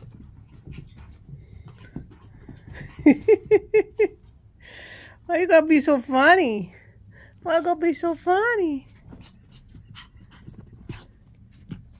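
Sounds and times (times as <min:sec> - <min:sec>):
puppy scuffling on carpet: 0:00.0 - 0:03.9, 0:08.9 - 0:11.9.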